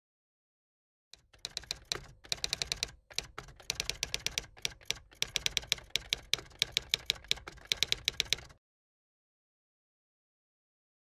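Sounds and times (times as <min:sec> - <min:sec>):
keystroke clicks: 0:01.2 - 0:08.6.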